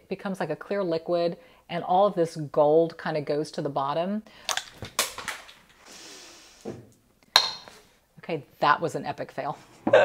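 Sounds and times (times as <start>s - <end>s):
soft breathy hiss: 1.3s - 1.7s, 5.7s - 7.1s.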